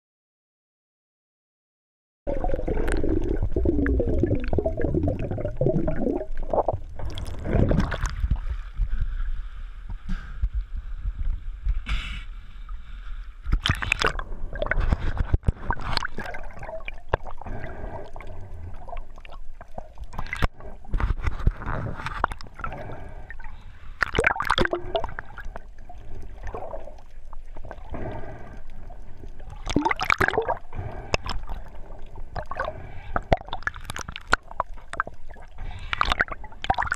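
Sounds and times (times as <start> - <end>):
muffled underwater rumble: 2.3 - 36.9
muffled water sloshing and splashing: 2.3 - 36.9.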